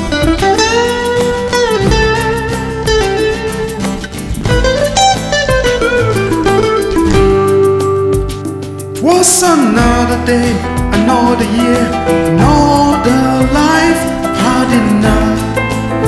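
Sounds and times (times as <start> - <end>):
backing band playing: 0.0 - 16.0
lead guitar bending notes: 0.0 - 16.0.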